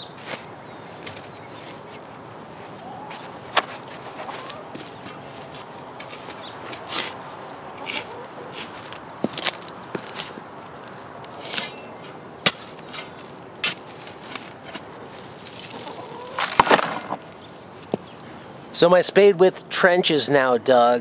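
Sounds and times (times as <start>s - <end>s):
spade scraping soil: 0.1s - 2.1s, 3.6s - 17.2s.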